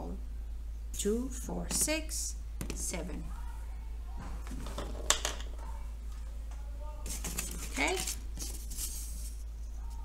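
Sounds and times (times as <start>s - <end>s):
low steady hum: 0.0s - 10.0s
hand handling things on tabletop: 7.0s - 10.0s.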